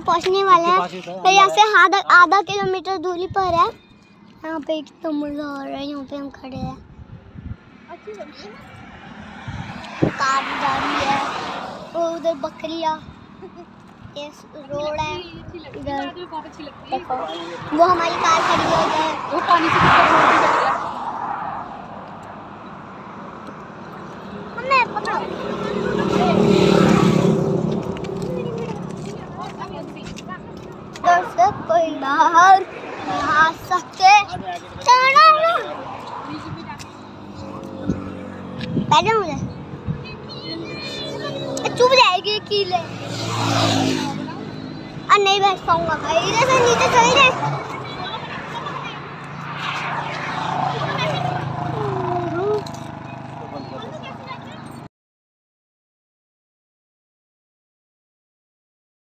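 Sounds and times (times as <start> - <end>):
vehicle passing by: 0.0 - 54.9.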